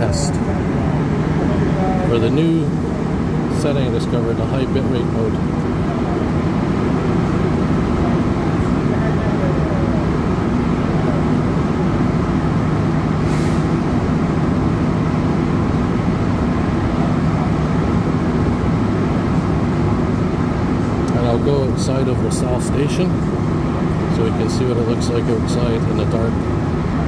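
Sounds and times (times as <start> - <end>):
train rumbling through tunnel: 0.0 - 27.0
brief hiss: 13.2 - 13.8.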